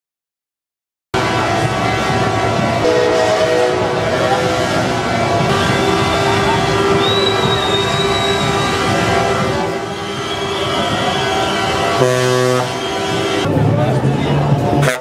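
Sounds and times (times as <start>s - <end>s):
truck air horns blasting: 1.2s - 13.5s, 14.8s - 15.0s
deep horn blast: 1.2s - 13.6s, 14.8s - 15.0s
voices: 1.2s - 15.0s.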